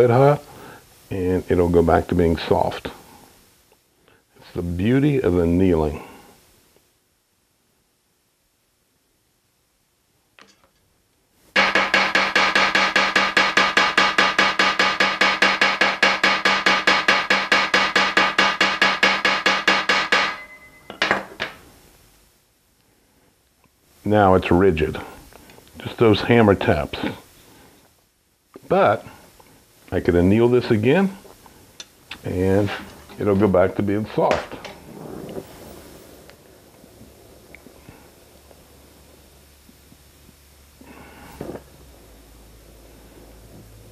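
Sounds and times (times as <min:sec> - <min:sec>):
hammer tapping metal: 0:11.6 - 0:21.6
separate knocks: 0:11.6 - 0:21.6
torch flame hissing: 0:31.3 - 0:43.9.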